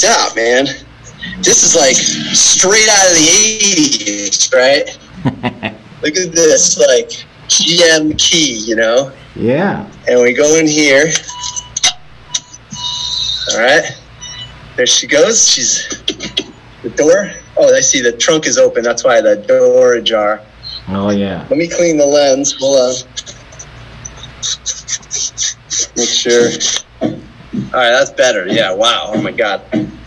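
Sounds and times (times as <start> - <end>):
low steady hum: 0.0 - 30.0
electronic warning chime: 10.9 - 14.5.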